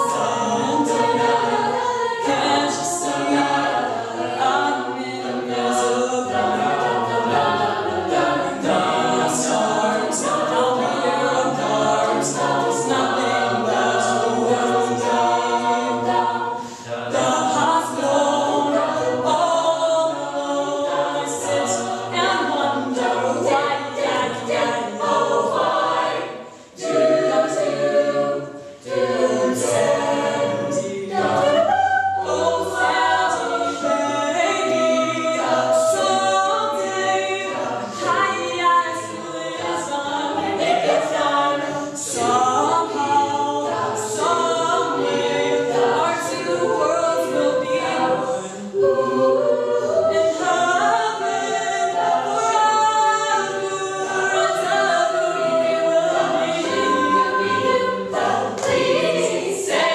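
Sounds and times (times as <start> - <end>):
a cappella group singing: 0.0 - 59.9.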